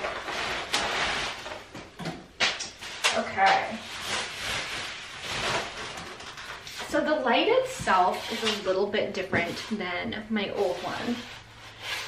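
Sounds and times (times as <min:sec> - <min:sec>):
plastic wrapping crinkling: 0:00.0 - 0:07.6.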